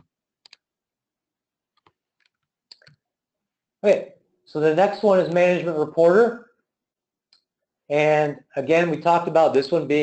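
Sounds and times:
man speaking: 0:03.8 - 0:06.5, 0:07.9 - 0:10.0.

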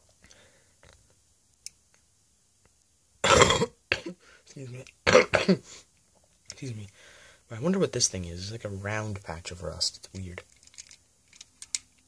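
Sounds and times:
man coughing or burping: 0:03.2 - 0:04.2, 0:05.0 - 0:05.7.

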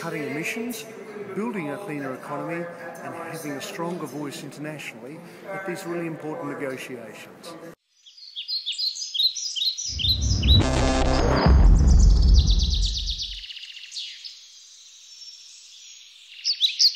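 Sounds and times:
birds chirping and trilling: 0:08.0 - 0:10.6, 0:11.8 - 0:16.9
deep rumble sound effect: 0:09.9 - 0:13.4.

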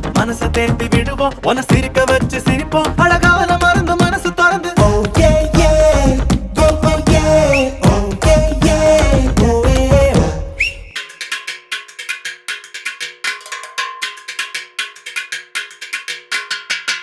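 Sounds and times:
bass and drums: 0:00.0 - 0:10.9
clicking metallic percussion: 0:00.0 - 0:17.0
band with singing: 0:00.2 - 0:10.9.

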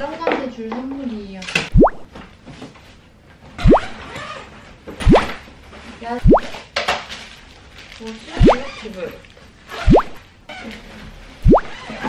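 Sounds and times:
cartoon bloop sound effect: 0:01.7 - 0:02.1, 0:03.6 - 0:04.0, 0:05.0 - 0:05.4, 0:06.2 - 0:06.6, 0:08.4 - 0:08.7, 0:09.8 - 0:10.2, 0:11.4 - 0:11.8.

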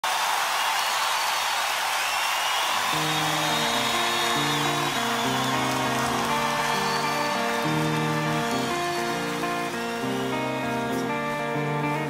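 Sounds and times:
crowd cheering: 0:00.0 - 0:12.0
solo guitar picking arpeggios: 0:03.0 - 0:12.0.

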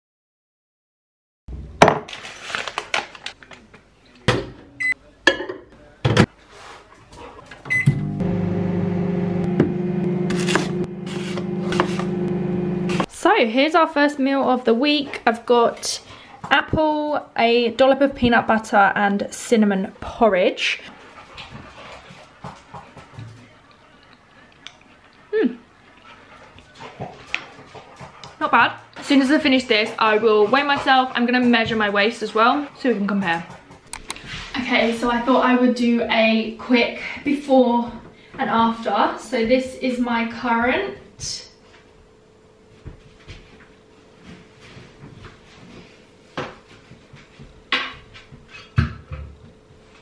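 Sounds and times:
kitchen knocks and clatter: 0:05.2 - 0:06.3, 0:47.7 - 0:49.5
microwave button beeps: 0:07.7 - 0:08.1
microwave oven humming: 0:07.7 - 0:13.1
person chewing: 0:23.7 - 0:25.2.

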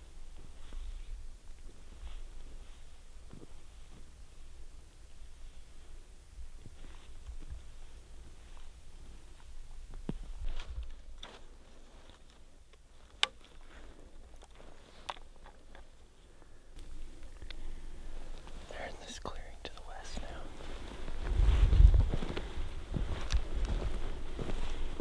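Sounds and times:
crunching footsteps: 0:00.2 - 0:04.4, 0:06.6 - 0:25.0
low wind rumble: 0:16.3 - 0:25.0.

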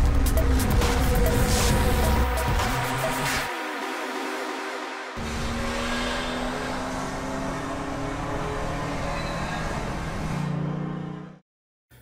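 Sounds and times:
music: 0:00.0 - 0:05.2
car engine accelerating: 0:05.2 - 0:11.4.

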